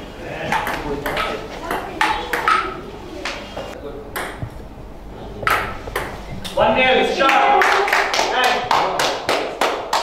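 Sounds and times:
ping-pong ball hitting paddles: 0.5 - 2.8, 4.1 - 4.5, 5.4 - 6.6, 7.3 - 10.0.

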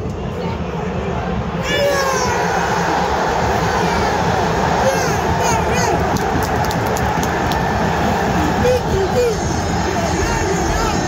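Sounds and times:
football crowd roaring: 0.0 - 11.0
individual voices shouting: 1.6 - 7.2.

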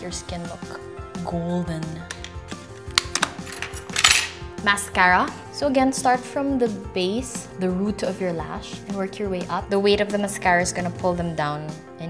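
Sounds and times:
background music: 0.0 - 12.0
makeup compacts clicking: 1.9 - 4.4.

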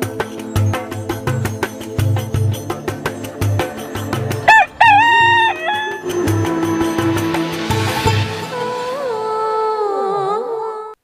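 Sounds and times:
background music: 0.0 - 10.9
rooster crowing: 4.5 - 6.3.

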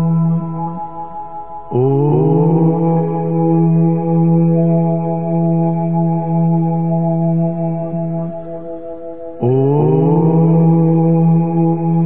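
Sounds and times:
voice chanting: 0.0 - 8.7, 9.4 - 12.0
sustained drone: 9.4 - 12.0.

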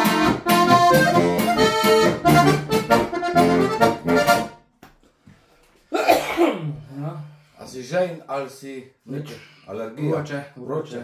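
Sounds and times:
button accordion chord: 0.0 - 4.6
man talking: 6.7 - 11.0.

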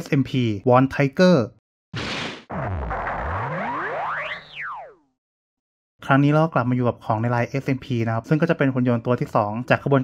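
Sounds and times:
rising and falling whistle-like tone: 2.5 - 5.2.

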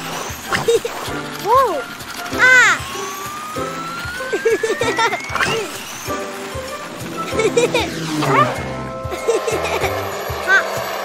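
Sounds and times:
bouncy cartoon background music: 0.0 - 11.0
thin rising whistle effect: 2.7 - 9.2
short pitched swoops: 5.2 - 9.2.

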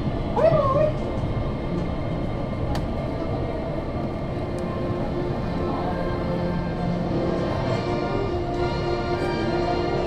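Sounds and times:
monorail rumble: 0.0 - 10.0.

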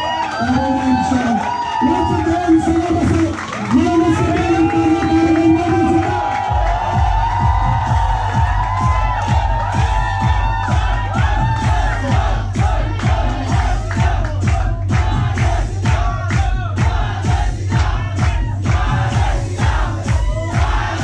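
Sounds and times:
club dance music: 0.0 - 21.0
crowd cheering and shouting: 0.0 - 21.0.

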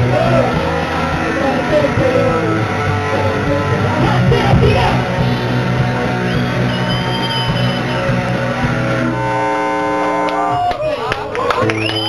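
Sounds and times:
electric guitar: 0.0 - 12.0
live rock band playing: 0.0 - 12.0
held notes ringing: 5.0 - 10.6.

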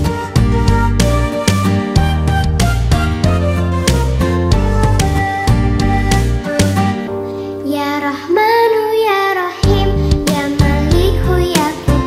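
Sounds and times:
light backing music: 0.0 - 12.0
child singing: 7.6 - 12.0.

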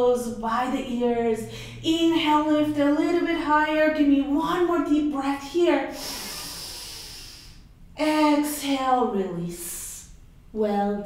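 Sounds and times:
deep breath: 6.0 - 7.8.

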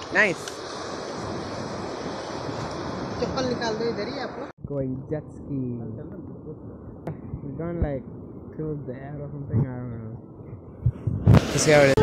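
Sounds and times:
surf breaking on beach: 0.0 - 4.5, 11.3 - 12.0
wind on microphone: 0.0 - 12.0.

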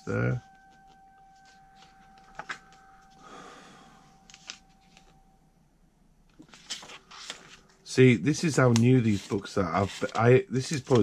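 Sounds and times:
book pages rustling: 0.4 - 3.2, 4.2 - 5.2, 6.3 - 11.0.

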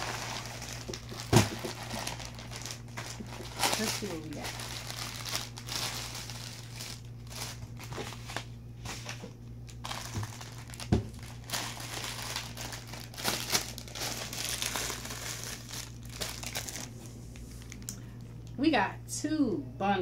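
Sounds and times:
plastic bags crinkling: 0.0 - 18.1
low steady hum: 0.0 - 20.0.

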